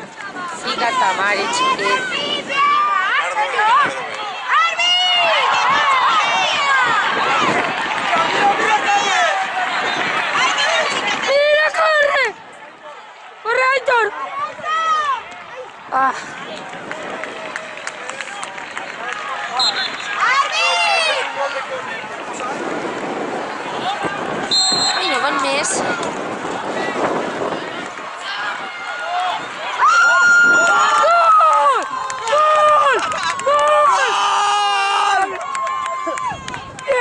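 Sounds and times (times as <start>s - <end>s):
background chatter: 0.0s - 4.8s, 5.4s - 30.7s
crowd noise: 0.0s - 37.0s
people shouting: 0.8s - 12.4s, 19.8s - 21.8s, 23.7s - 36.3s.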